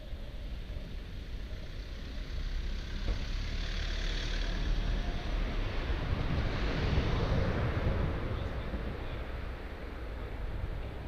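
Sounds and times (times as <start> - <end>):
rumbling street traffic: 0.0 - 11.0.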